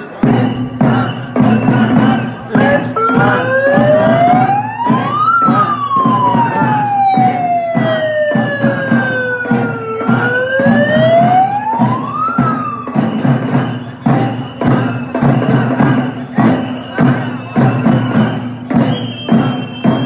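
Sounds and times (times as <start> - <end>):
steady drumbeats: 0.0 - 20.0
siren wailing: 2.6 - 13.8.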